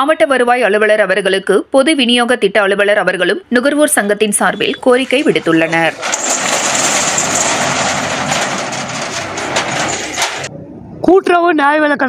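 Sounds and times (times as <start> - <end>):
steel shutter rattling down: 4.6 - 10.5.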